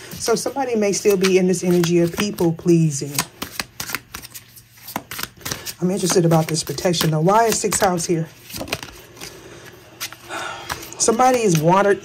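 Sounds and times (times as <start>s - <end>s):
cards being shuffled: 0.0s - 11.9s.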